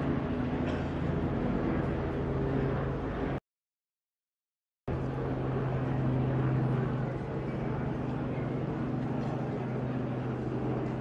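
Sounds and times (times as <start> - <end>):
low engine drone: 0.0 - 3.4, 4.9 - 11.0
outdoor street noise: 0.0 - 3.4, 4.9 - 11.0.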